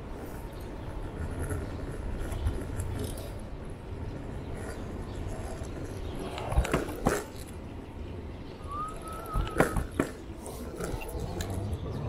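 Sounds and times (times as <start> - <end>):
scooter wheels rolling on pavement: 0.0 - 12.0.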